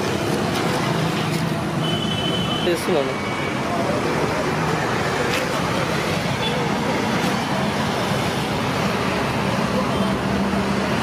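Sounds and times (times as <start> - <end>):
road traffic: 0.0 - 11.0.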